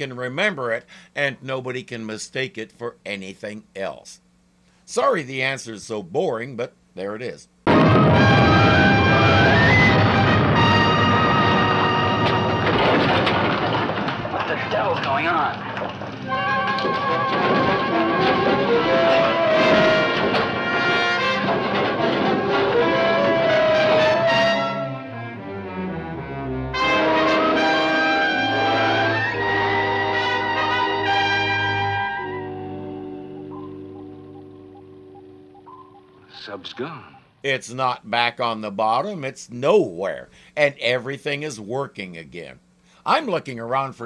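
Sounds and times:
dramatic orchestral music with brass: 0:08.0 - 0:12.8, 0:16.3 - 0:33.0.

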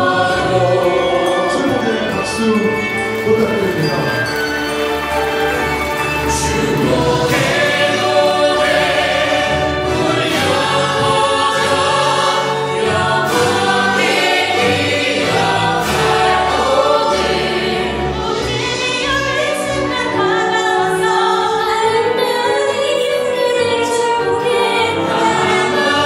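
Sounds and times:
group singing in harmony: 0:00.0 - 0:02.1, 0:05.3 - 0:26.0.

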